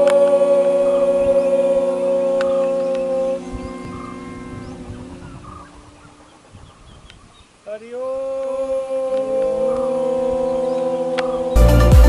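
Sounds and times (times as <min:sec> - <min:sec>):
group chanting a long note: 0:00.0 - 0:04.6, 0:09.0 - 0:12.0.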